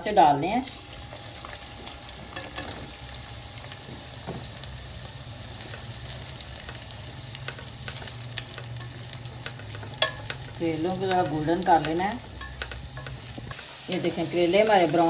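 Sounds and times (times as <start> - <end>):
low steady hum: 0.0 - 15.0
vegetables sizzling in hot oil: 0.3 - 15.0
wooden spoon stirring: 6.6 - 13.6.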